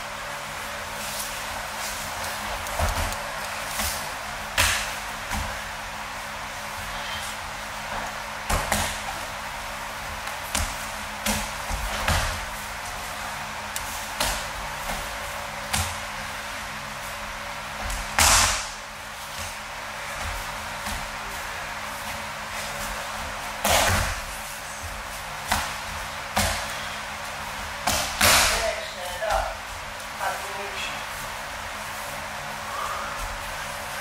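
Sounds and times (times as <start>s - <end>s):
bodies thudding onto mats: 10.4s - 12.5s.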